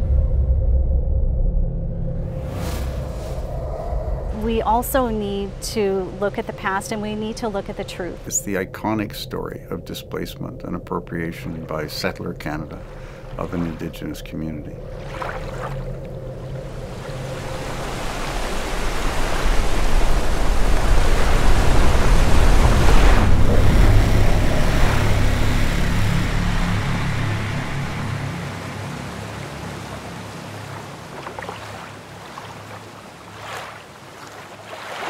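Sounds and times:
wind noise: 0.0s - 10.9s, 14.8s - 29.0s
low rumble: 0.0s - 30.3s
rushing water: 11.3s - 35.0s.

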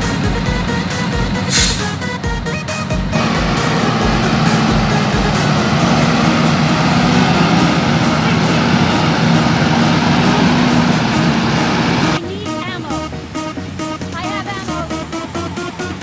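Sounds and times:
music with thumping beat: 0.0s - 11.7s
street noise: 0.0s - 16.0s
truck diesel engine droning: 0.0s - 16.0s.

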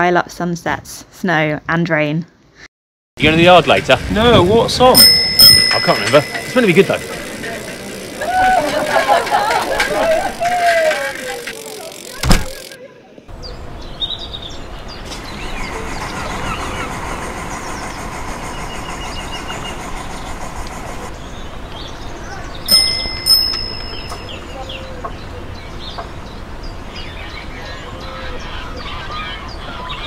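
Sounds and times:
voices chattering: 3.2s - 13.5s, 15.2s - 17.7s, 21.8s - 30.0s.

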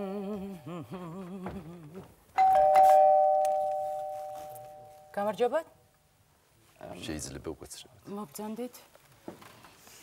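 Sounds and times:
two-tone doorbell chime: 2.4s - 5.1s.

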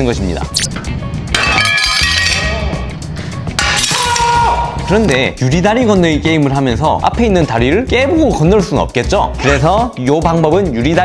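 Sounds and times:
background music: 0.0s - 11.0s
glass shattering: 0.6s - 2.7s, 3.6s - 4.3s.

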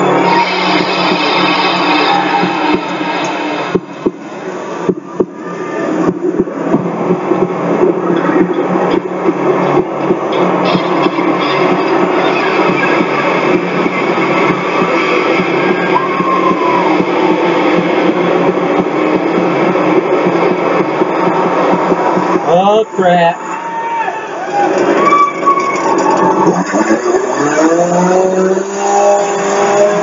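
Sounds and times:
music: 0.0s - 22.6s
voices: 0.0s - 25.7s
arena crowd din: 0.0s - 28.7s.

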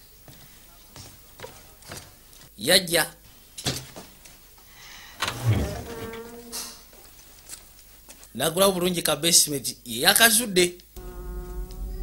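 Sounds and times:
wooden panel scraping: 5.2s - 6.7s.

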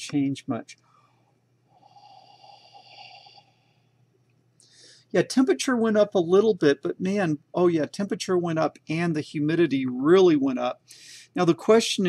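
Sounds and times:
short breath in: 0.9s - 3.8s, 4.6s - 5.1s, 10.9s - 11.3s
man blowing breath: 0.9s - 4.0s, 4.6s - 5.1s, 10.9s - 11.3s.

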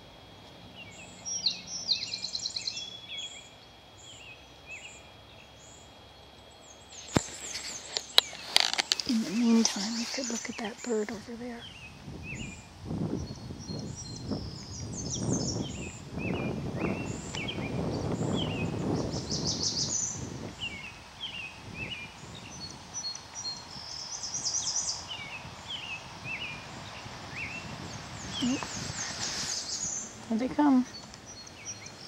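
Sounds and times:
birds chirping: 0.0s - 32.0s
high bird trill: 0.0s - 32.0s.

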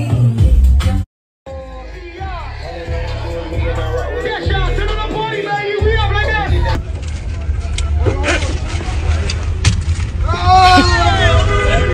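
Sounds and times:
music: 0.0s - 6.8s.

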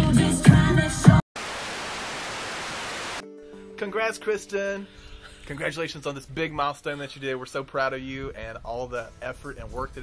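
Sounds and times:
music: 0.0s - 1.2s, 3.2s - 10.0s
tv static hiss: 1.4s - 3.2s.

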